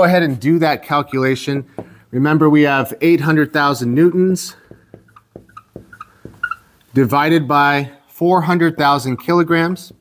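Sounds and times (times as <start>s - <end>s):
marker tapping on whiteboard: 1.7s - 2.0s, 4.5s - 6.7s, 9.0s - 10.0s
marker squeaking on whiteboard: 4.0s - 7.2s, 8.7s - 10.0s.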